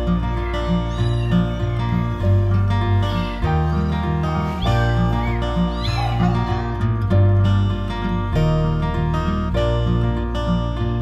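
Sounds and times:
acoustic guitar music: 0.0s - 11.0s
kitten meowing: 0.4s - 6.8s.

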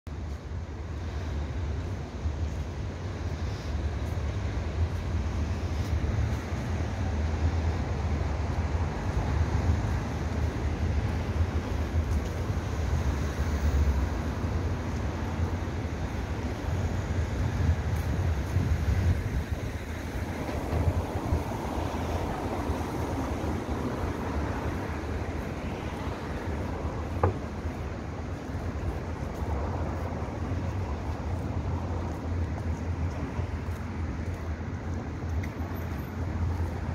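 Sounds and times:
distant traffic rumble: 0.1s - 36.9s
wind buffeting microphone: 0.5s - 35.6s.

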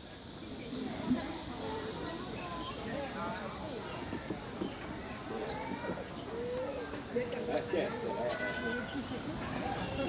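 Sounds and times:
people talking: 0.5s - 10.0s.

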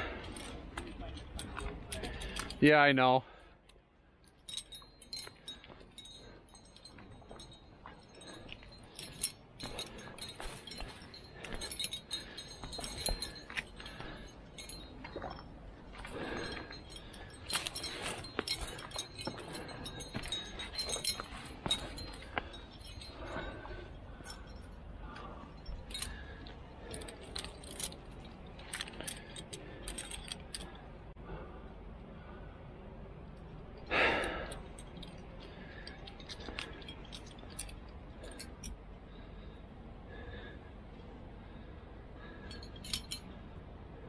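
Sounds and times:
metal climbing gear jingling: 0.0s - 31.2s, 33.2s - 40.6s, 41.4s - 43.6s.

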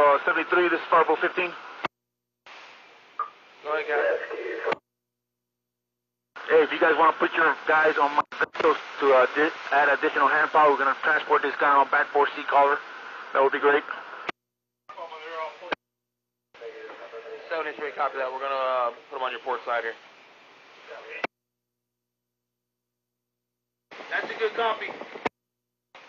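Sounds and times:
man's voice over radio: 0.0s - 1.6s, 3.6s - 4.8s, 6.4s - 14.1s, 24.1s - 25.0s
radio hiss: 0.0s - 1.9s, 2.5s - 4.8s, 6.4s - 14.3s, 14.9s - 15.8s, 16.6s - 21.3s, 23.9s - 25.3s
radio click: 8.2s - 9.0s.

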